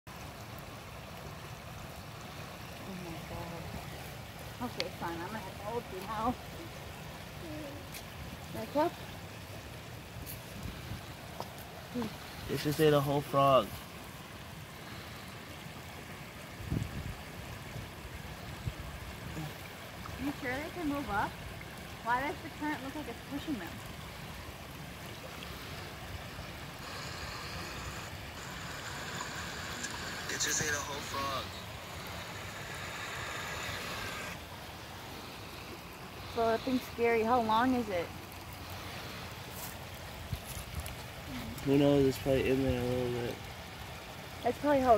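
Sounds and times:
running water rushing: 0.1s - 44.9s.

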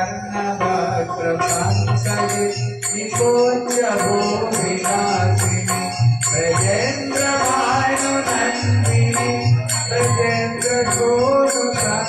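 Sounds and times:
musical accompaniment: 0.0s - 12.0s
chanted hymn: 0.6s - 12.0s
percussion strokes: 1.4s - 12.0s.

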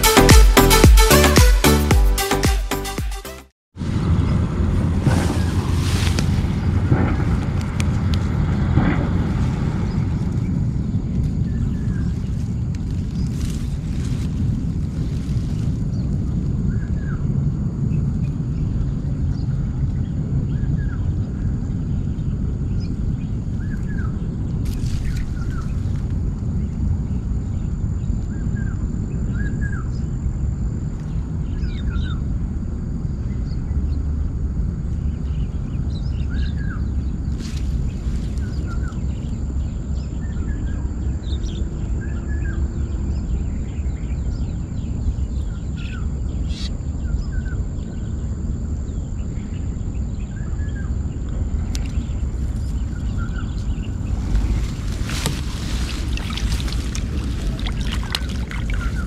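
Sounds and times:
steady low rumble: 3.8s - 59.0s
small birds chirping: 48.9s - 59.0s.

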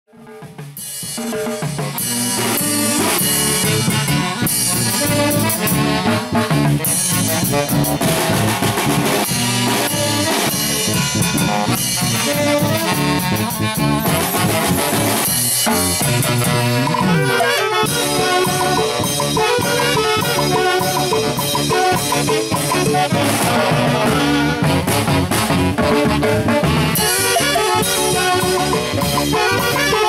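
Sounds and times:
band playing live: 0.1s - 30.0s
steady drum beat: 0.2s - 30.0s
saxophones in harmony: 1.9s - 30.0s.

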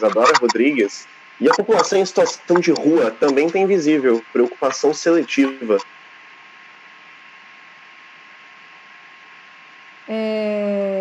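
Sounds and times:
faint steady tone: 0.0s - 10.0s
open microphone hiss: 0.0s - 11.0s.

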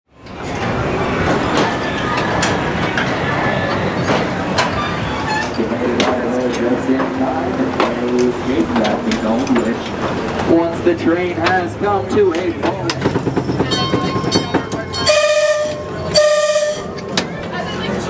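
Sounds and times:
ride train rumbling on track: 0.1s - 18.0s
people's voices: 0.2s - 18.0s
track clacks and knocks: 0.2s - 18.0s.

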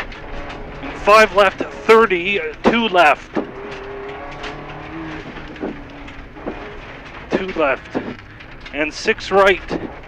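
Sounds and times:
car engine running at speed: 0.0s - 10.0s
road and gravel noise: 0.0s - 10.0s
short knocks: 0.0s - 10.0s.

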